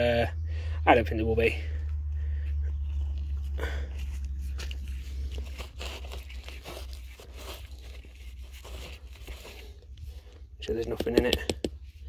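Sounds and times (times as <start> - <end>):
steady low rumble: 0.0 - 12.0
ash and soil crunching: 1.5 - 11.6.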